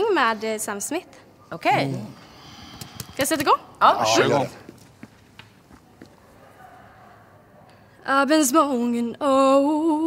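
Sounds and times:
faint footsteps on stage floor: 0:04.6 - 0:06.3.

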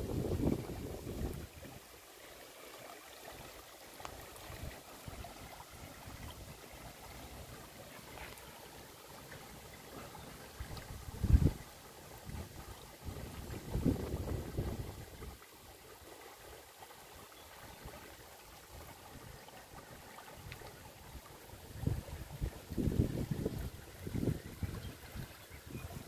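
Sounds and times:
wind buffeting microphone: 0:00.0 - 0:01.8, 0:10.6 - 0:11.6, 0:12.3 - 0:15.4, 0:21.7 - 0:26.0
stream rippling over pebbles: 0:00.0 - 0:26.0.

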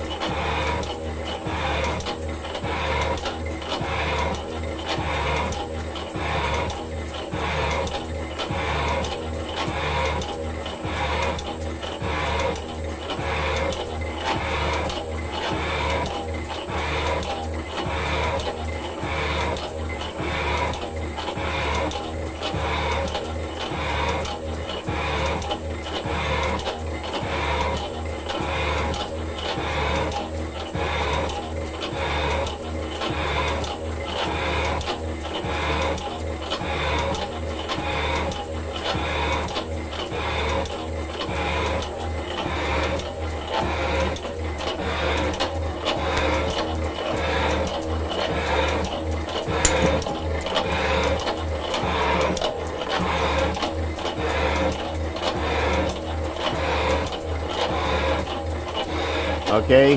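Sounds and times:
metal shaper tool scraping: 0:00.0 - 0:32.4, 0:47.2 - 0:59.9
motor and gear hum: 0:00.0 - 0:59.9.

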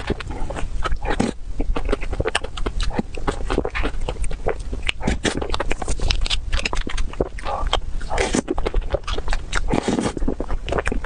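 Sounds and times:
wet chewing and lip-smacking: 0:00.0 - 0:11.0.

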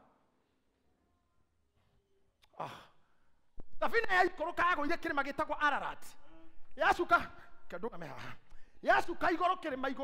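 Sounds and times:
person sighing: 0:02.4 - 0:03.1
man speaking: 0:03.6 - 0:10.0.

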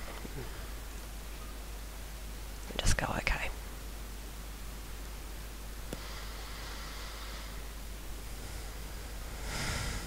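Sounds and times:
background hiss: 0:00.0 - 0:10.0
low hum: 0:00.0 - 0:10.0.

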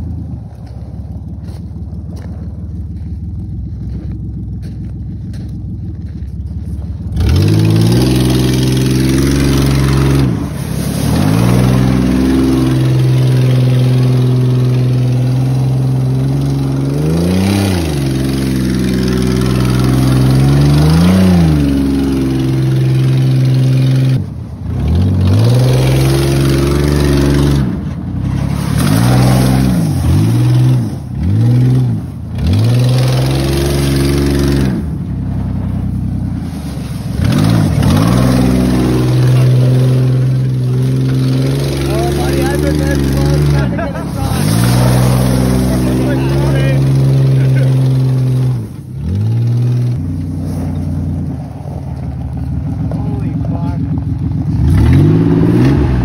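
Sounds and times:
tyres on gravel: 0:00.0 - 0:56.0
loud engine revving: 0:03.0 - 0:56.0.

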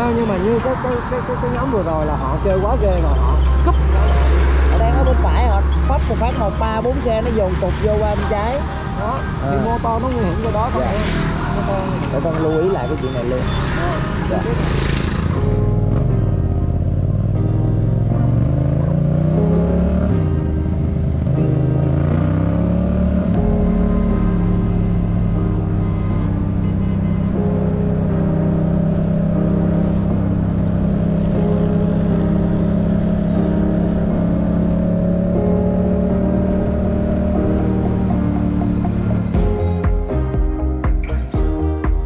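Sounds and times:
motorcycle engine accelerating: 0:00.0 - 0:41.6
background music: 0:00.0 - 0:42.0.

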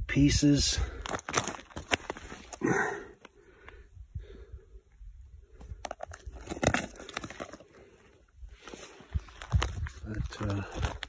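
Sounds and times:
footsteps on stony ground: 0:00.5 - 0:03.4, 0:05.5 - 0:11.0.

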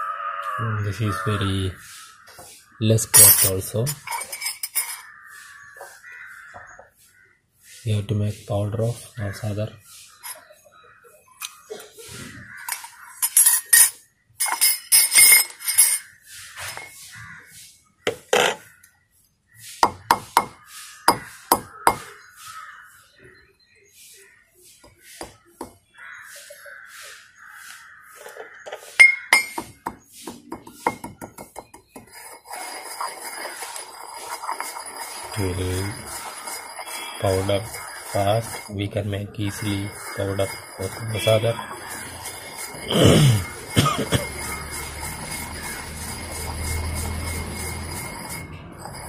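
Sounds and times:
pestle pounding in ceramic mortar: 0:19.8 - 0:22.1, 0:29.0 - 0:38.8, 0:39.4 - 0:49.0
pestle grinding gritty fragments: 0:28.8 - 0:49.0.

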